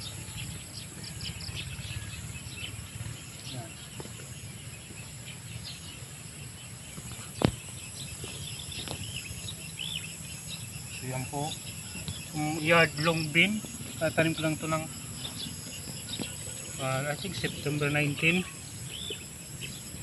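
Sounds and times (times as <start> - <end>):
birds chirping: 0.0 - 20.0
insects trilling: 0.0 - 20.0
low steady rumble: 0.0 - 20.0.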